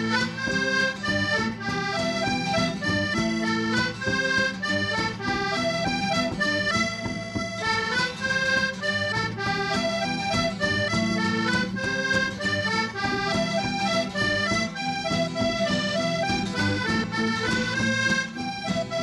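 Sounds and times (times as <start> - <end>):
acoustic guitar strumming: 0.0 - 19.0
button accordion playing: 0.0 - 19.0.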